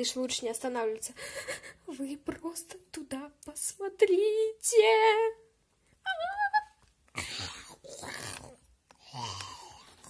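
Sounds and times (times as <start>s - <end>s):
person rasping zombie groans: 7.2s - 9.9s.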